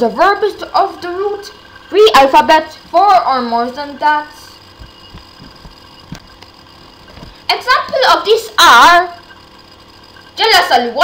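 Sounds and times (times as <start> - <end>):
faint steady hum: 0.0 - 11.0
soft dull low thumps: 4.7 - 6.4.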